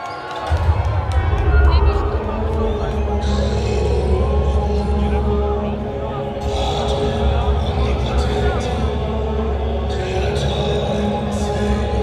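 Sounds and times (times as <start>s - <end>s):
crowd shouting and singing: 0.0s - 12.0s
deep bass rumble: 0.6s - 12.0s.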